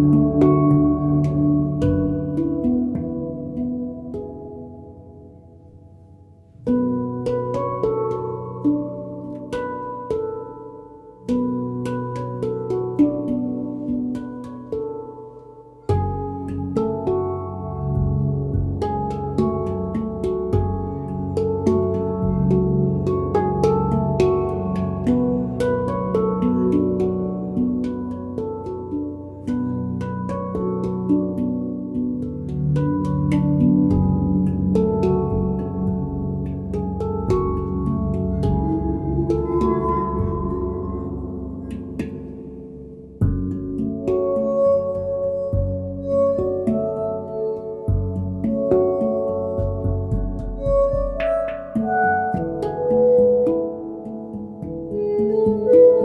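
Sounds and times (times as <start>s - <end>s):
handpan notes: 0.0s - 56.0s
long glassy held tones: 32.4s - 54.3s.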